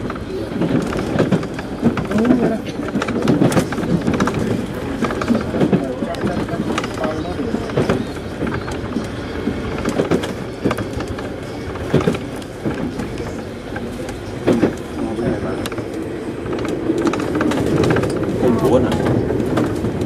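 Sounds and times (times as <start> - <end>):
train rolling on track: 0.0 - 20.0.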